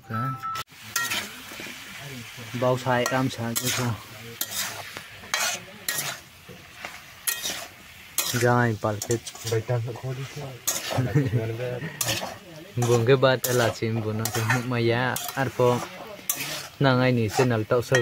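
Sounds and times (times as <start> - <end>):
light sizzle of frying: 0.7 - 18.0
metal spatula scraping wok: 0.8 - 18.0.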